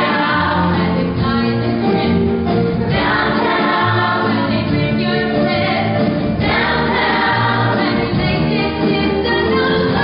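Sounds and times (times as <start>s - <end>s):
chorus singing in harmony: 0.0s - 10.0s
musical accompaniment: 0.0s - 10.0s.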